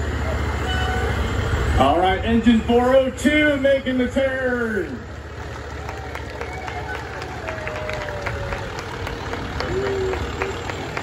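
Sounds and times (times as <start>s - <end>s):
diesel truck engine rumbling past: 0.0s - 11.0s.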